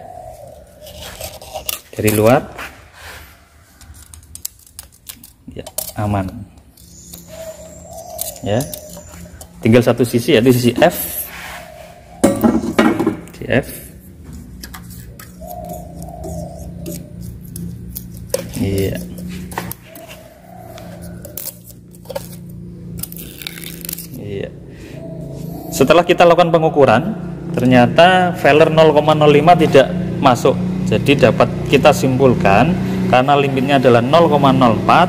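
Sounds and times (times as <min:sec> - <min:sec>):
steady low hum: 0:00.0 - 0:35.0.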